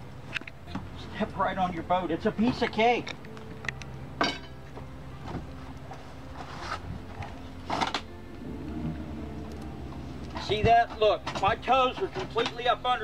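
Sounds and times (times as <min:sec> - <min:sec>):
steady low hum: 0:03.5 - 0:11.3
knocks and scuffs in a boat: 0:10.4 - 0:12.7.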